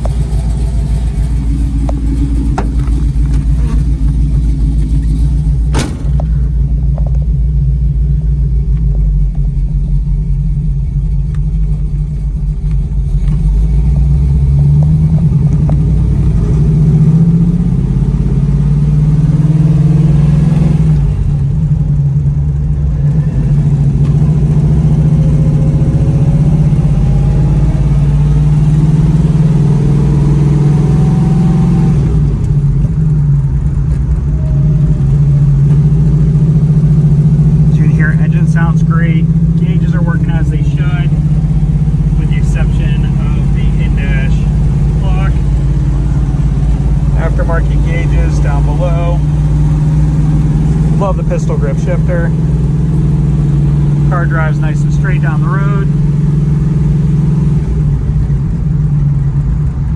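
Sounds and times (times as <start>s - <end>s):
car engine under load: 0.0s - 59.9s.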